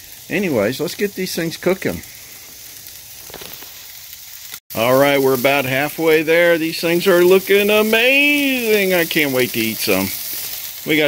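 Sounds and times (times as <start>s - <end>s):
faint crackles: 0.0s - 4.6s, 5.2s - 11.0s
steaks sizzling on grill: 0.0s - 11.0s.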